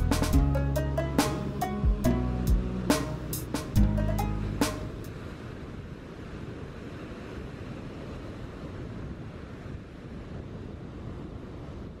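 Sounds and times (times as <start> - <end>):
small waves washing on beach: 4.7 - 12.0.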